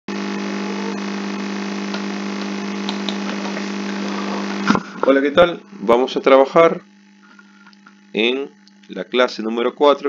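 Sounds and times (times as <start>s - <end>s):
electrical hum with hiss: 0.1s - 10.0s.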